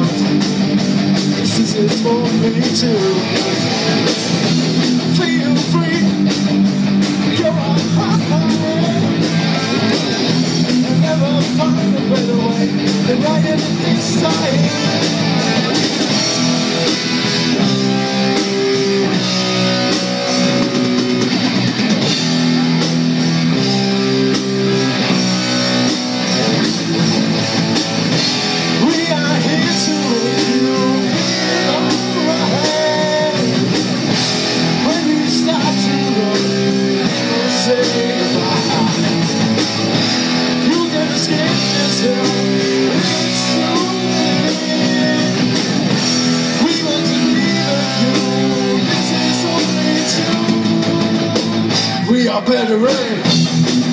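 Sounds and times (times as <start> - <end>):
bass guitar: 0.0 - 53.9
drum kit: 0.0 - 53.9
electric guitars: 0.0 - 53.9.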